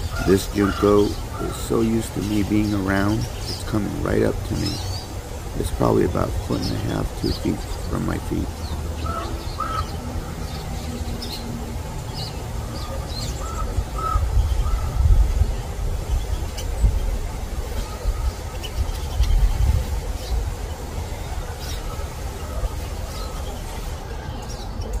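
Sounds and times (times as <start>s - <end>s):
steady low rumble: 0.0s - 24.2s
wild birds chipping and calling: 0.0s - 25.0s.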